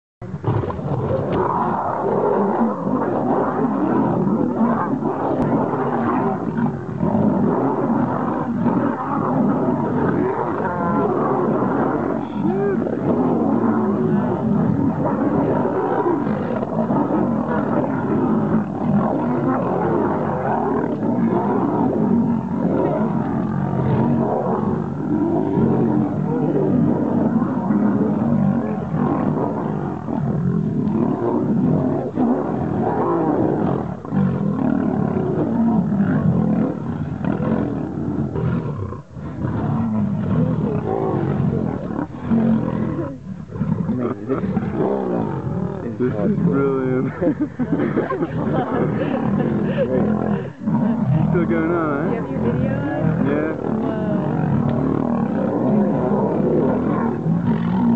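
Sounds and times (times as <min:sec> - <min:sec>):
lions snarling and growling: 0:00.2 - 0:57.9.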